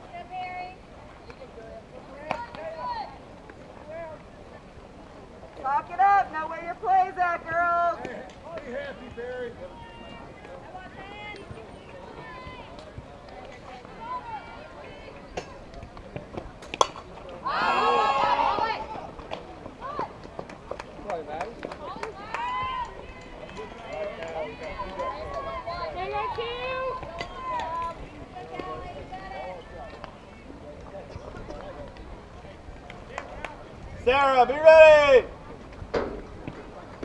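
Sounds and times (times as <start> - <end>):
distant voices: 0.0 - 37.0
bat hitting softball: 16.6 - 17.2
spectators cheering and shouting: 17.3 - 19.2, 21.9 - 30.0.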